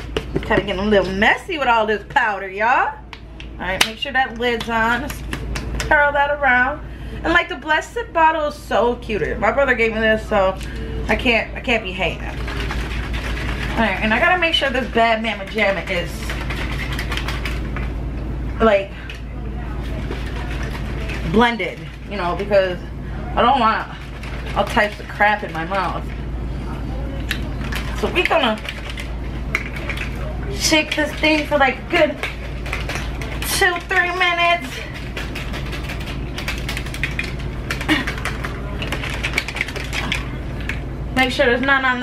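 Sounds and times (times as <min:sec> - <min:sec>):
steady low hum: 0:00.0 - 0:42.0
ball rattling in shaker bottle: 0:12.0 - 0:18.0, 0:19.0 - 0:22.6, 0:23.4 - 0:26.3, 0:27.2 - 0:40.8.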